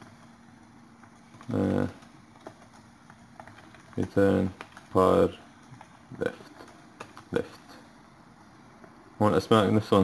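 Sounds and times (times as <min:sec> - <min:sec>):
computer keyboard typing: 0:00.0 - 0:07.7.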